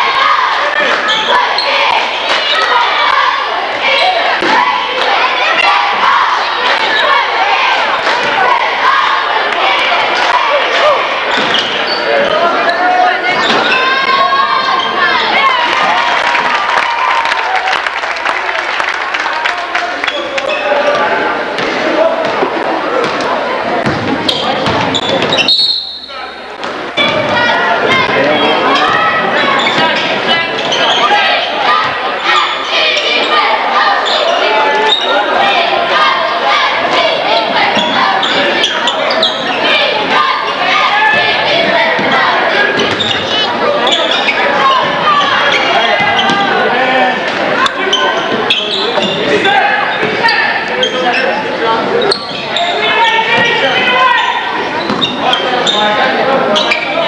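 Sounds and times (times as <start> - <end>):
spectators chattering and shouting: 0.0 - 57.0.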